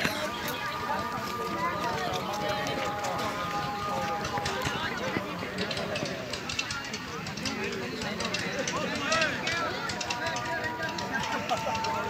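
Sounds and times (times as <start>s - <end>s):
crowd of men talking: 0.0s - 12.0s.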